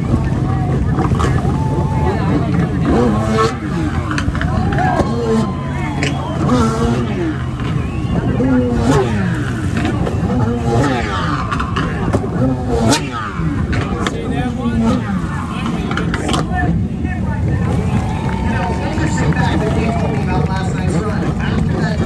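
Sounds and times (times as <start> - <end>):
jet ski engine revving: 0.0 - 22.0
voices in background: 0.0 - 22.0.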